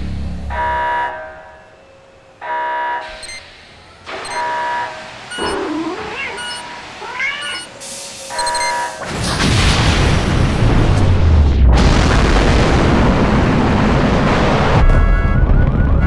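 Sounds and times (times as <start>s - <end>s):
buzzy electronic beeps: 4.2s - 6.8s
cat meowing: 5.4s - 7.8s.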